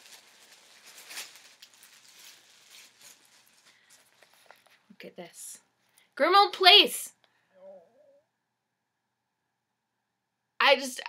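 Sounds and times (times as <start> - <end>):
packaging rustling: 0.0 - 4.9.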